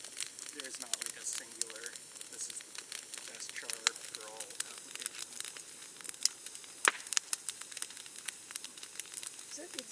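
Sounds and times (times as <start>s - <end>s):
wood fire crackling and popping: 0.0s - 9.9s.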